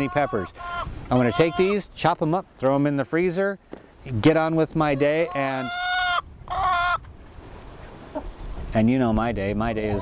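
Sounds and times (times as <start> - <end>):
chicken calls: 0.0 - 1.9, 4.7 - 7.1, 7.8 - 8.4, 9.6 - 10.0.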